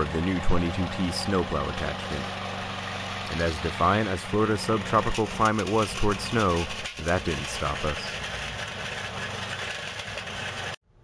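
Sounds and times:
small gasoline engine running: 0:00.0 - 0:10.8.

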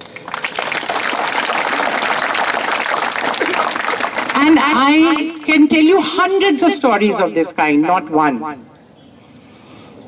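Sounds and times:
crowd applauding: 0:00.0 - 0:05.6.

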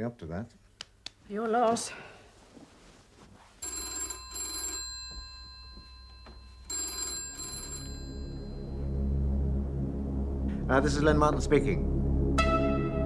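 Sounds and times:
telephone ringing: 0:03.6 - 0:08.9.

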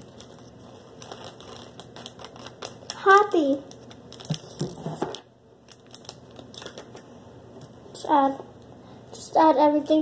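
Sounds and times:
plastic bag crinkling: 0:00.0 - 0:07.1.

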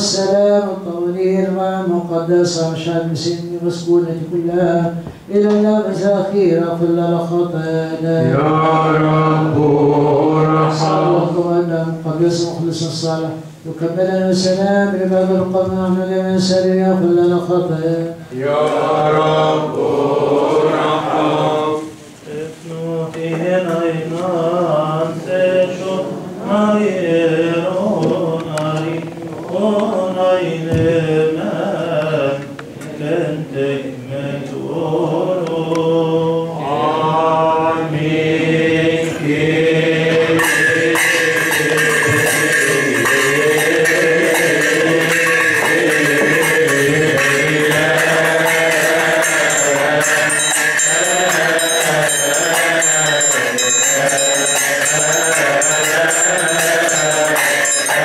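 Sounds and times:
men chanting: 0:05.7 - 0:13.1, 0:14.0 - 0:58.0
hand cymbals ringing: 0:40.4 - 0:58.0.

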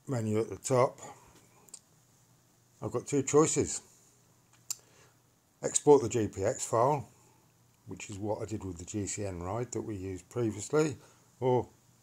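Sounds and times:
man speaking: 0:00.0 - 0:01.3, 0:02.8 - 0:03.9, 0:05.6 - 0:07.2, 0:07.8 - 0:11.8.

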